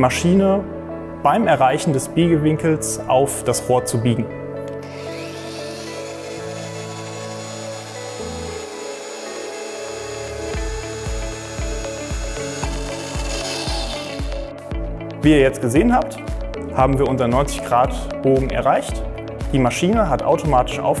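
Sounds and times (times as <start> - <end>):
pipe bender motor: 4.8 - 14.6
background music with beat: 9.8 - 21.0.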